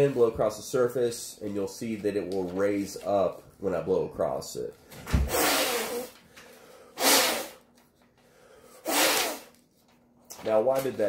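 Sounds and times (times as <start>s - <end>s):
breath blown across paper: 5.3s - 7.7s, 8.4s - 9.6s.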